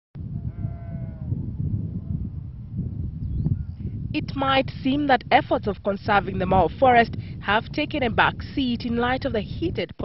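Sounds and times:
wind rumble on microphone: 0.2 - 10.0
farm animal bleating: 0.4 - 1.3.

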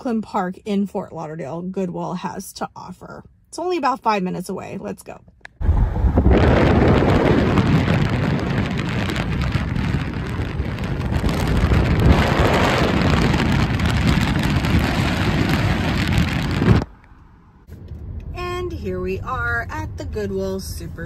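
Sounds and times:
wind and road noise in car: 5.6 - 21.0.

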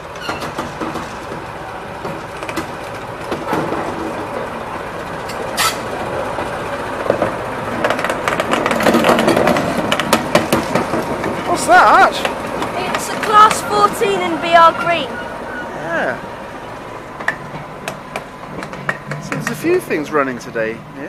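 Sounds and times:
diesel locomotive engine: 0.0 - 21.0.

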